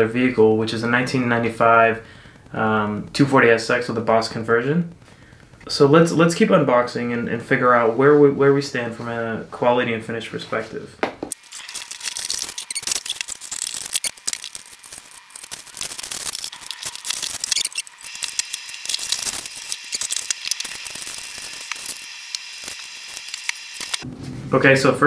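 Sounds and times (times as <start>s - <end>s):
parts knocking on wooden table: 11.0s - 11.3s.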